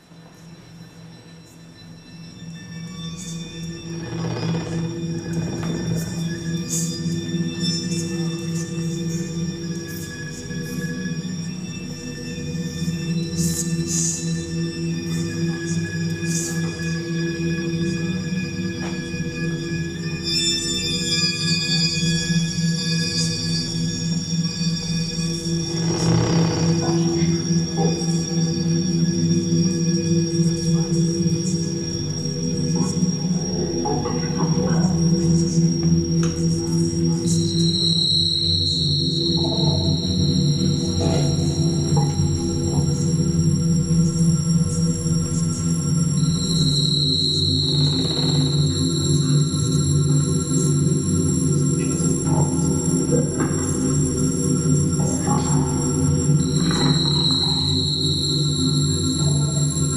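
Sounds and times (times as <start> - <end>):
low drone of steady tones: 0.0 - 59.9.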